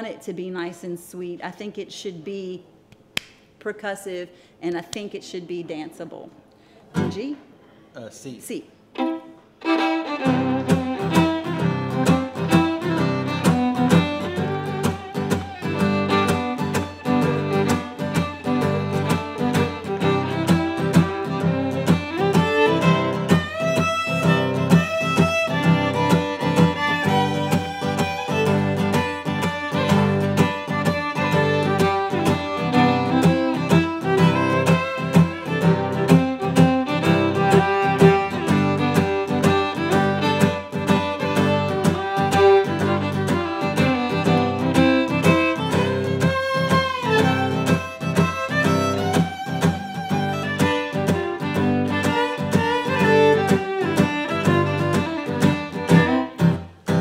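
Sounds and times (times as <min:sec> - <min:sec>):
fiddle playing melody: 0:08.9 - 0:57.0
strummed acoustic guitar: 0:09.7 - 0:57.0.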